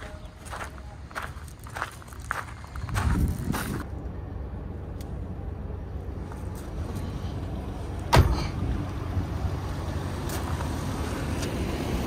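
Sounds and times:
footsteps crunching on gravel: 0.0 - 3.9.

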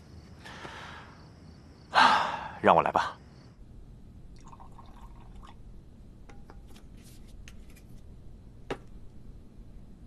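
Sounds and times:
hot water pouring into cup: 4.3 - 5.6.

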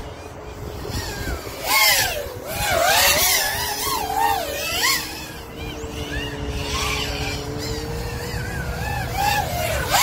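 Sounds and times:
quadcopter motor whine: 0.0 - 10.0.

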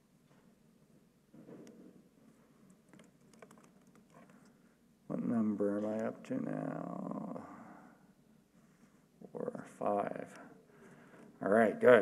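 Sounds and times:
typing on computer keyboard: 2.9 - 4.4.

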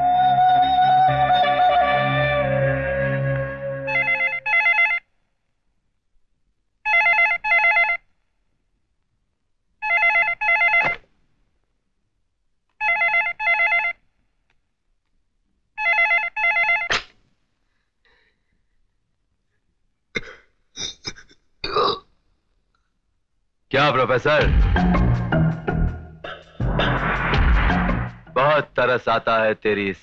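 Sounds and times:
background music: 0.0 - 4.5, 23.8 - 29.1
desk telephone ringing: 3.9 - 5.0, 9.8 - 10.9, 12.8 - 14.0.

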